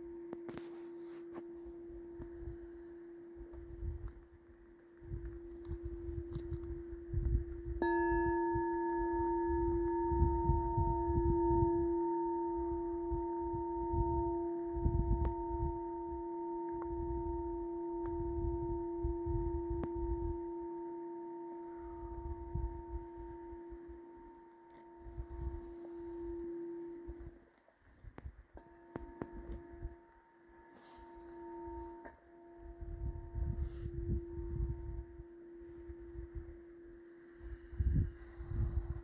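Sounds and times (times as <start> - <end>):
singing bowl strike: 0.0 - 4.2, 5.1 - 27.4, 28.6 - 39.0
crystal singing bowl ringing: 0.0 - 39.0.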